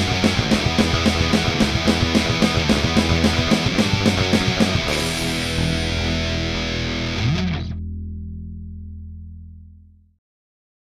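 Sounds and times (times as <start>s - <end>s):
distorted electric guitar chord: 0.0s - 9.8s.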